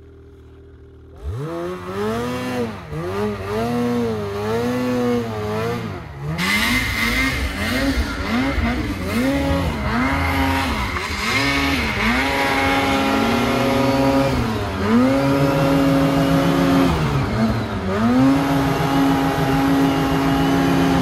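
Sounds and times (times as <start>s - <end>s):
track churning snow: 0.0s - 21.0s
snowmobile engine revving: 1.2s - 21.0s.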